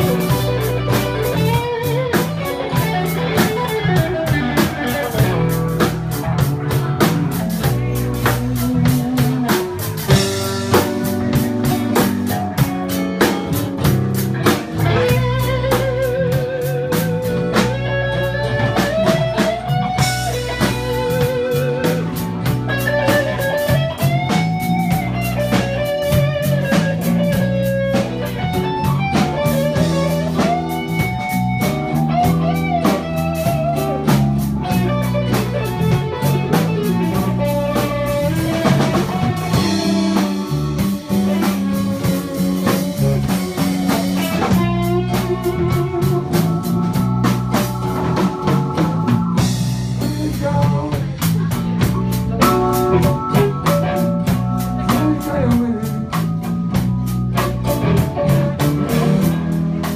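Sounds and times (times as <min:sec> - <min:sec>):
bass guitar: 0:00.0 - 0:59.9
drum kit: 0:00.0 - 0:59.9
electric guitar lead with bent notes: 0:00.0 - 0:59.9.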